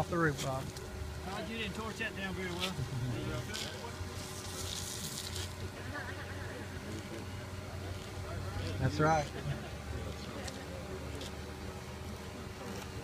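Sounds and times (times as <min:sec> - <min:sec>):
indistinct voices talking: 0:00.0 - 0:13.0
steady low hum: 0:00.0 - 0:13.0.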